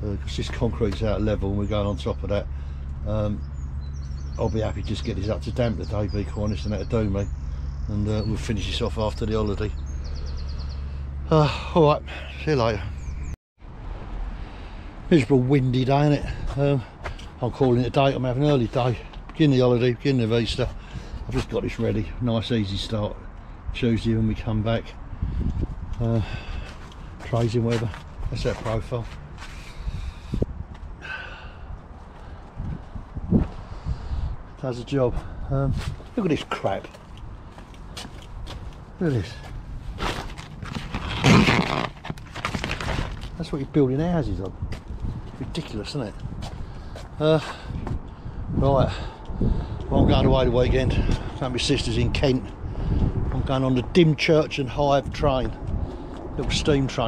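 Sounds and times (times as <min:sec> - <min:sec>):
wind buffeting microphone: 0:23.6 - 0:57.0
plastic sheet rustling flap: 0:40.0 - 0:43.4
plastic sheet crackling: 0:40.3 - 0:43.4.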